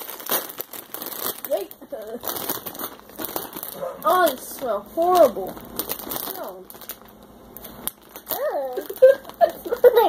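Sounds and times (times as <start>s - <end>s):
child laughing: 8.4s - 10.0s.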